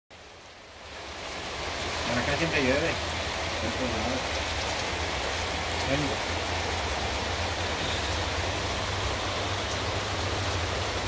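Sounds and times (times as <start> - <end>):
steady rain falling: 0.1 - 11.0.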